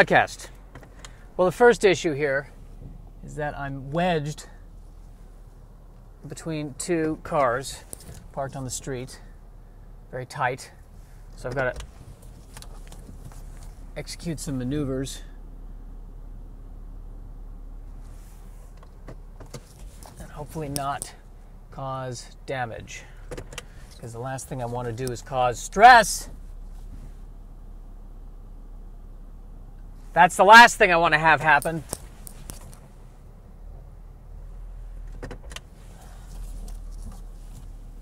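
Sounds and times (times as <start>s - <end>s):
car engine running inside car: 0.0s - 38.0s.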